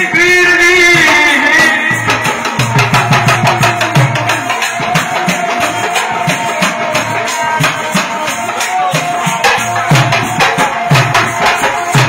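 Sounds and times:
hand drum beating: 0:01.9 - 0:12.0.

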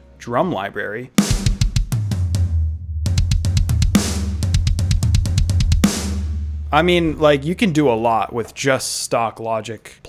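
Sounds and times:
programmed drum kit: 0:01.2 - 0:08.7
low bass note: 0:02.4 - 0:07.8.

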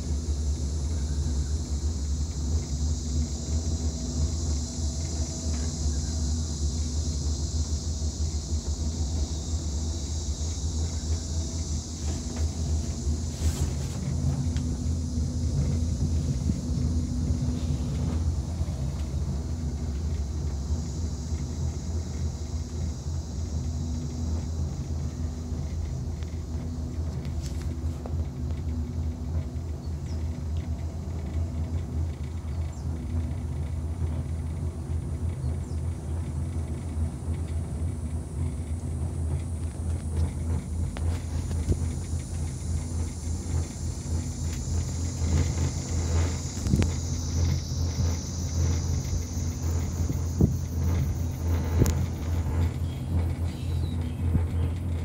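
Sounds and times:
cable car cabin rumble: 0:00.0 - 0:55.0.

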